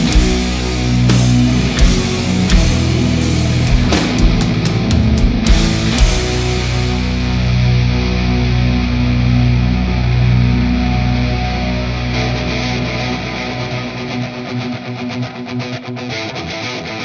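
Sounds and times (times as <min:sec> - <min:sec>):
heavy guitar and bass chord: 0:00.0 - 0:15.8
guitar strumming: 0:00.0 - 0:17.0.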